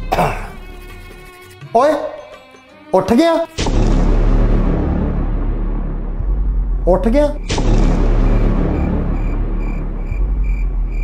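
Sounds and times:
short cough: 0.0 - 0.6
background music: 0.0 - 11.0
man speaking: 1.7 - 2.3, 2.9 - 3.5, 6.8 - 7.4.

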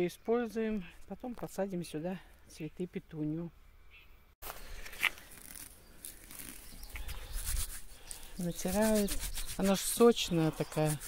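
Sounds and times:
rustling of stems and leaves: 4.4 - 11.0.

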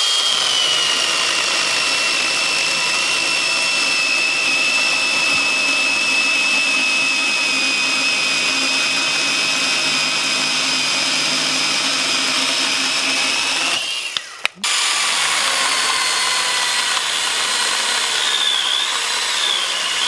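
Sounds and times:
electric chainsaw whine: 0.0 - 20.0.

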